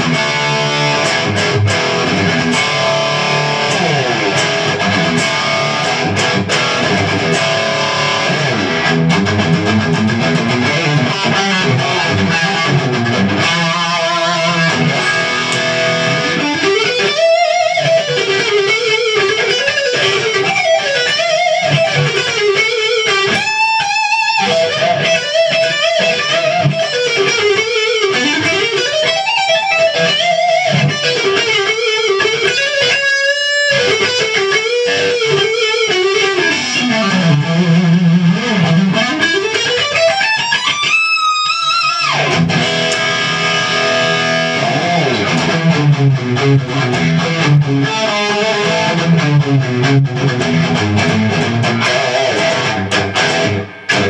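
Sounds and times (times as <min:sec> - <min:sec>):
distorted electric guitar lead: 0:00.0 - 0:54.0.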